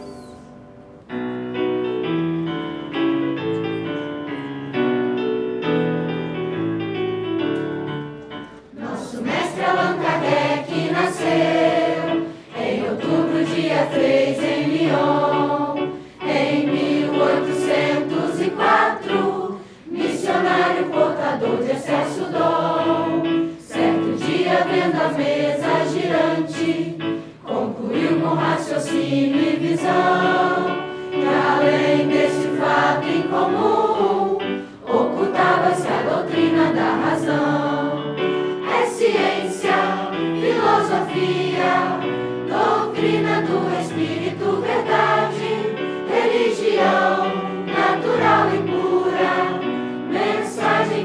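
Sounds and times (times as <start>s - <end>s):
digital piano: 0.0s - 51.0s
choir singing a hymn: 8.6s - 51.0s.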